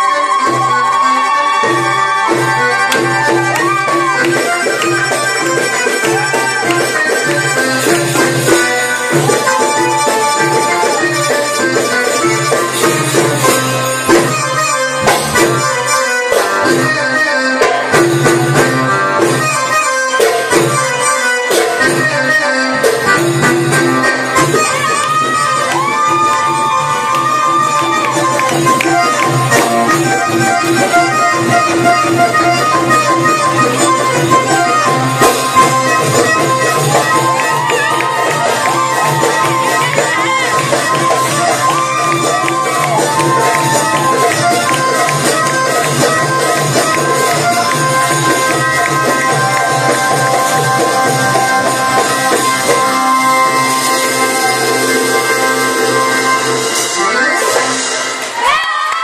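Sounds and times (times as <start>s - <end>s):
hand drums beating: 0.4s - 56.8s
electronic keyboard melody: 1.3s - 58.3s.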